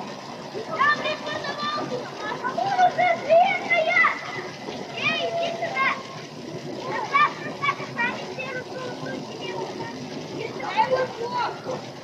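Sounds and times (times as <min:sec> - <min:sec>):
outdoor background noise: 0:00.0 - 0:12.0
children calling out: 0:00.5 - 0:12.0.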